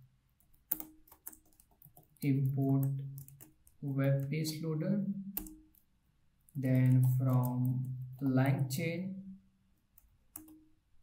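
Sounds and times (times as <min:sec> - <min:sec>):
typing on computer keyboard: 0:00.4 - 0:04.6, 0:05.4 - 0:05.8, 0:06.5 - 0:08.2, 0:10.0 - 0:10.7.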